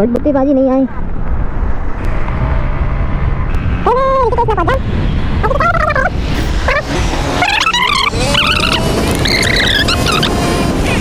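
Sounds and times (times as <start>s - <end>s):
wind and road rumble: 0.0s - 11.0s
voice-like call: 5.4s - 10.3s.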